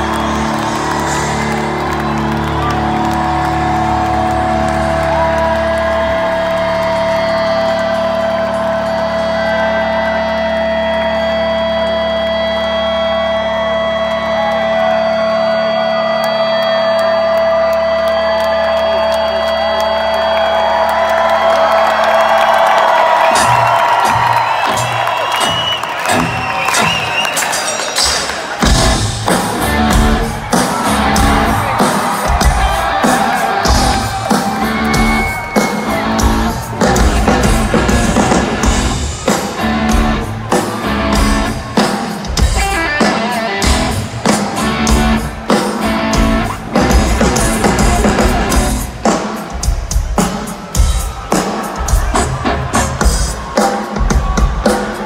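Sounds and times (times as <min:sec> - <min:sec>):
crowd cheering and whooping: 0:00.0 - 0:55.0
pounding drum-kit hits: 0:28.6 - 0:45.3.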